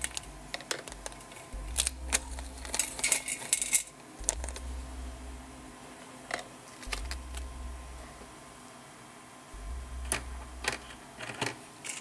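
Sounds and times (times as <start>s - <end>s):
components clicking in metal tray: 0.0s - 4.6s, 10.1s - 12.0s
low hum: 0.0s - 11.3s.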